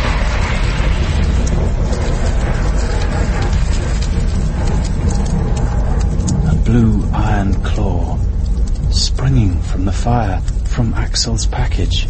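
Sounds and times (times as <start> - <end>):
deep rumble with crackling: 0.0 - 12.0.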